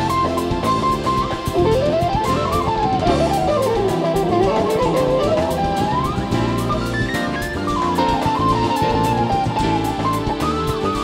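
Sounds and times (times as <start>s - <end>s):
bass: 0.0s - 11.0s
drum kit with cymbals: 0.0s - 11.0s
electric guitar solo: 0.0s - 11.0s
keyboards: 0.0s - 11.0s.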